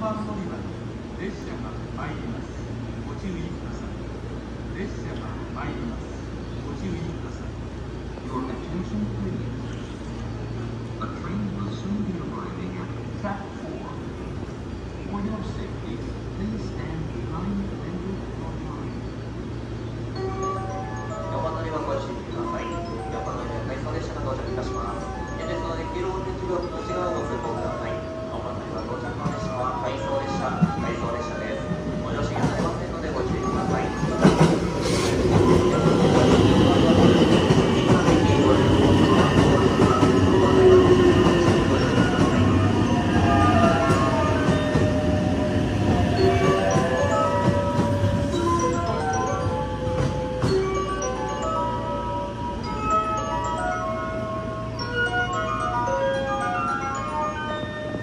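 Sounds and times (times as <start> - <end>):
train rumble with falling whine: 0.1 - 58.0.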